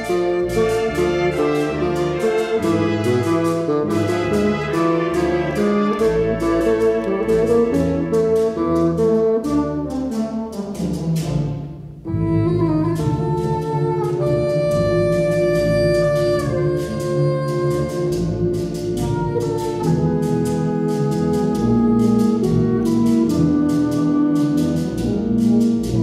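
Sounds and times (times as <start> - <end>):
solo bassoon: 0.0 - 11.3, 12.0 - 26.0
wind ensemble playing a danza: 0.0 - 26.0.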